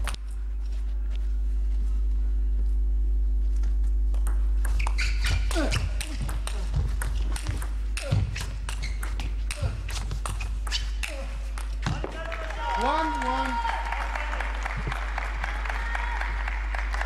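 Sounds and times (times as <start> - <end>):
shoes squeaking on floor: 4.7 - 11.9.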